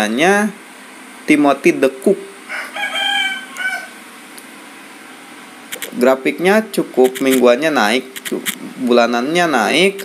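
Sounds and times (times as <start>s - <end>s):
rooster crowing: 2.5s - 4.0s.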